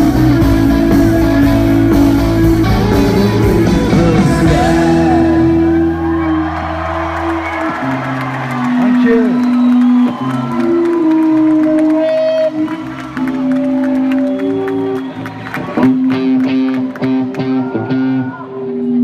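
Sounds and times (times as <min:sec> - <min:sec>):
bass guitar: 0:00.0 - 0:19.0
electric guitars ringing: 0:00.0 - 0:19.0
crowd cheering and whooping: 0:04.0 - 0:19.0.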